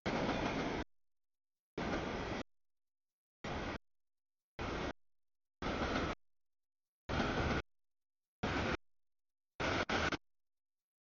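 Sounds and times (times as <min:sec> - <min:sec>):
freight train rolling on rails: 0:00.0 - 0:00.9, 0:01.8 - 0:02.5, 0:03.4 - 0:03.8, 0:04.6 - 0:05.0, 0:05.6 - 0:06.2, 0:07.1 - 0:07.7, 0:08.4 - 0:08.8, 0:09.6 - 0:10.2.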